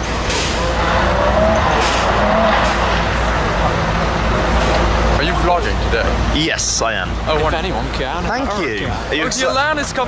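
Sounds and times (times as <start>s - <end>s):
car engine running: 0.0s - 9.2s
road and traffic noise: 0.0s - 10.0s.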